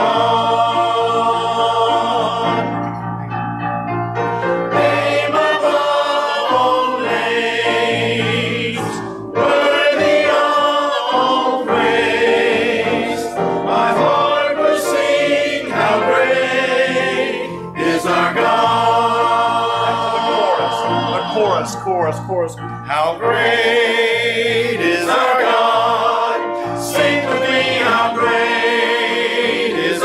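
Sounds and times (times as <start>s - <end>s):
choir singing a hymn: 0.0s - 3.2s, 4.2s - 30.0s
singers breathing: 26.5s - 26.8s.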